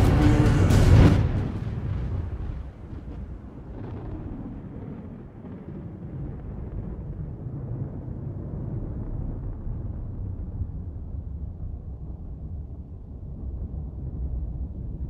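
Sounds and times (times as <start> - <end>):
deep low rumble: 0.0 - 5.5, 6.2 - 15.0.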